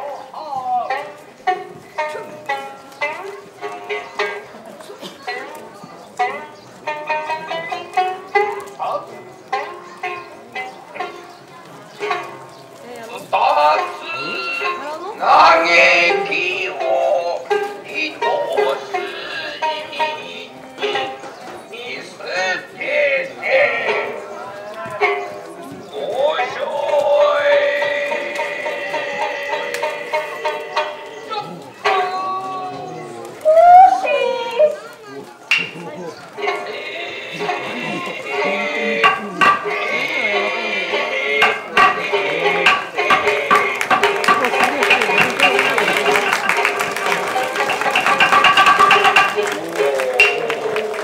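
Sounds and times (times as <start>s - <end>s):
held accompanying tones: 5.4s - 51.0s
high voice chanting: 25.9s - 34.7s, 35.6s - 46.1s
sharp wooden clacks: 35.5s - 35.9s, 39.0s - 39.8s, 41.4s - 50.6s.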